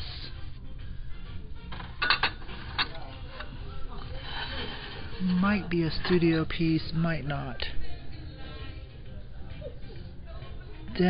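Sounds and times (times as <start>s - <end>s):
background music: 0.0s - 11.0s
dishware clinking: 1.7s - 3.1s.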